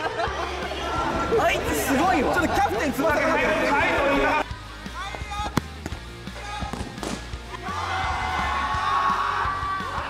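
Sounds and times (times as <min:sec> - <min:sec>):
background music: 0:00.0 - 0:10.0
ball kicked hard: 0:06.6 - 0:07.4.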